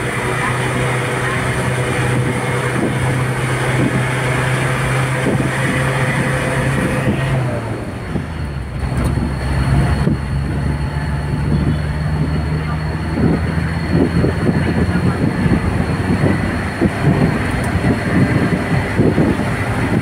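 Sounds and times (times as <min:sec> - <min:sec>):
road noise: 0:00.0 - 0:20.0
vehicle engine hum: 0:00.0 - 0:20.0
wind buffeting microphone: 0:00.0 - 0:20.0.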